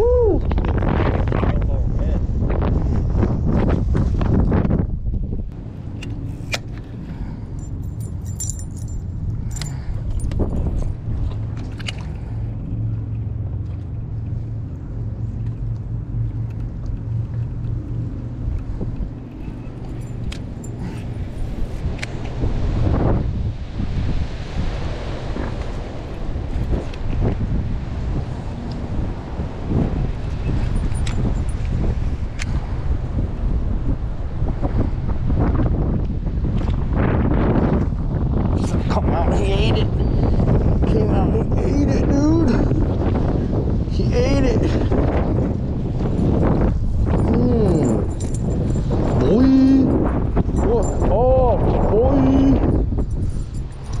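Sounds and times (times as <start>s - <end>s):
wind buffeting microphone: 0.0s - 54.0s
low steady hum: 4.8s - 24.5s
fishing rod and reel clicks: 11.6s - 12.2s.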